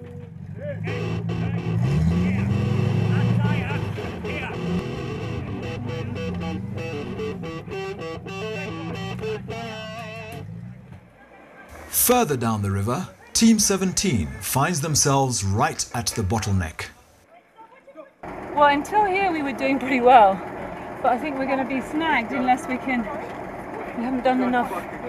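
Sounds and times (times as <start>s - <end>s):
off-road car engine revving: 0.0s - 16.5s
guitar background music: 3.2s - 10.5s.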